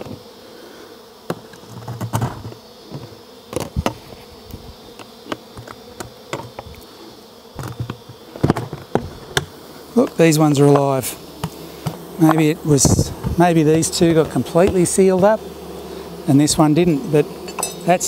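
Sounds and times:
bees buzzing: 0:00.0 - 0:18.0
plastic buckets knocking and clicking: 0:07.6 - 0:09.5, 0:13.2 - 0:15.3.

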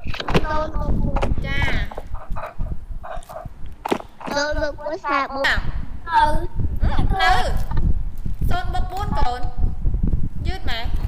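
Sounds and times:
steady low rumble: 0:00.0 - 0:11.0
sharp clicks and knocks: 0:01.1 - 0:02.6, 0:03.2 - 0:04.4.

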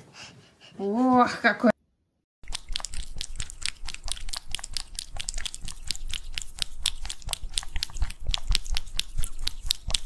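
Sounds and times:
cat licking wet clicks: 0:02.4 - 0:10.0.

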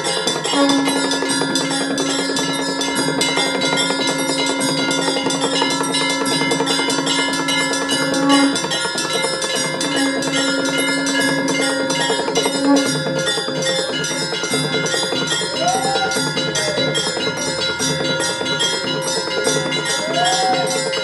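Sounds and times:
bells ringing rapidly: 0:00.0 - 0:21.0
long steady low tone: 0:00.6 - 0:21.0.

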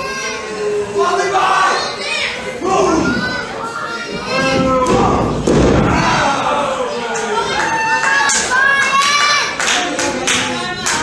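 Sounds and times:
crowd chatter and shouts: 0:00.0 - 0:11.0
body landing heavy thud: 0:04.6 - 0:06.4.

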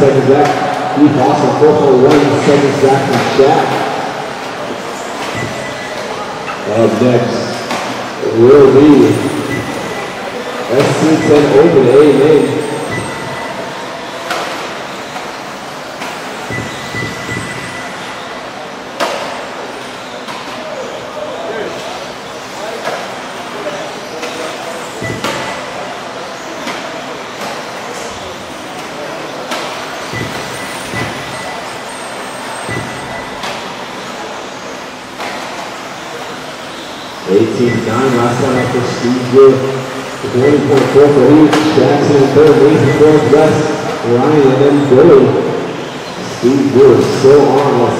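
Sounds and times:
cars knocking on track: 0:00.0 - 0:20.7, 0:22.1 - 0:47.9
crowd voices: 0:00.0 - 0:47.9.

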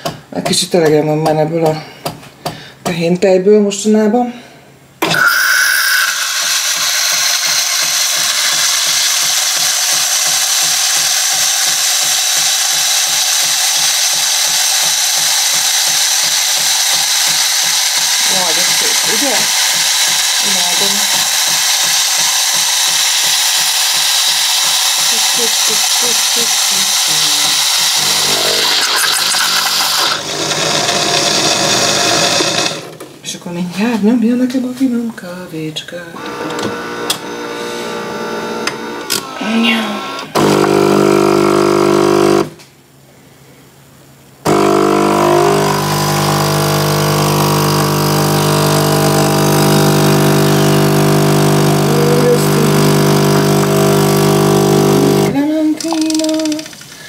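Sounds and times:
espresso machine hissing: 0:05.0 - 0:32.9, 0:36.2 - 0:42.6, 0:44.4 - 0:55.4
milk frother pump buzzing: 0:05.0 - 0:33.0, 0:36.2 - 0:42.6, 0:44.4 - 0:56.8.

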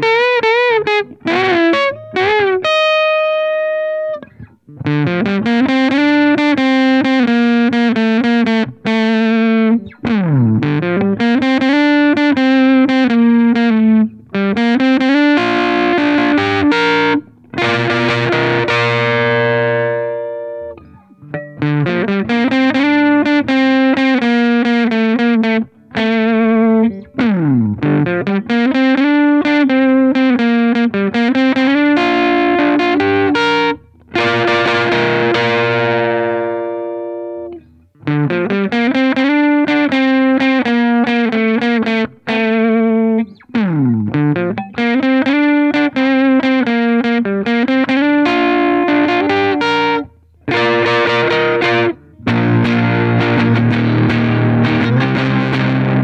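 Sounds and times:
overdriven electric guitar riffs: 0:00.0 - 0:56.0.

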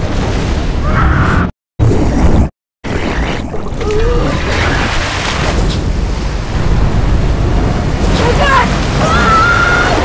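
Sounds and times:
floodwater rushing: 0:03.5 - 0:10.0
deep rumble: 0:05.2 - 0:10.0.

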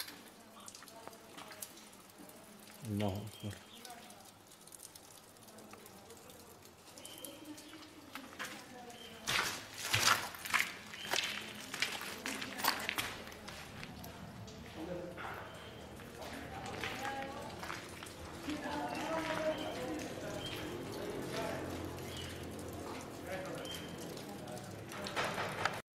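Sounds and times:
indistinct voices: 0:00.1 - 0:04.6, 0:11.0 - 0:25.5.

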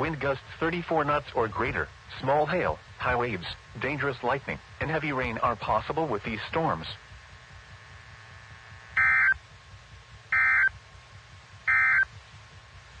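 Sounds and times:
faint steady hiss: 0:00.0 - 0:13.0
digital data tone bursts: 0:09.0 - 0:09.4, 0:10.3 - 0:10.8, 0:11.7 - 0:12.1.

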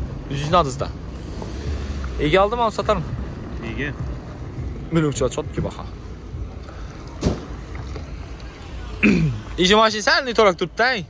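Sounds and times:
low outdoor rumble: 0:00.0 - 0:11.0.

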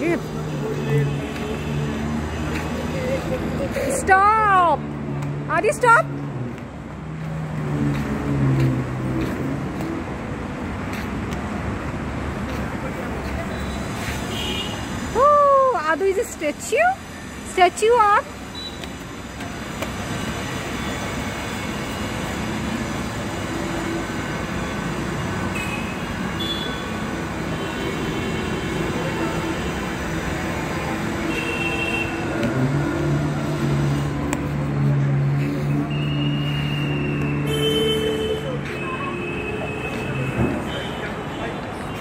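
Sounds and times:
outdoor background noise: 0:00.0 - 0:42.0.

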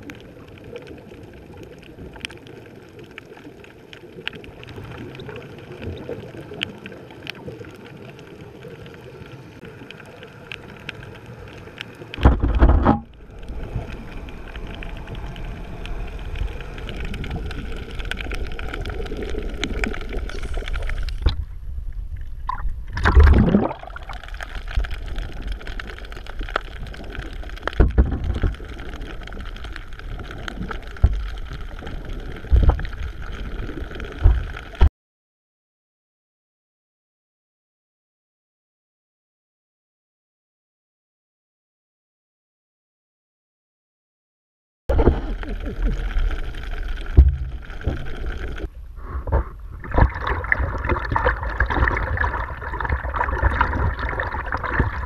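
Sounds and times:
scuba exhaust bubbles gurgling: 0:00.0 - 0:21.4, 0:22.4 - 0:34.8, 0:44.9 - 0:55.0
underwater hiss: 0:13.3 - 0:21.3.

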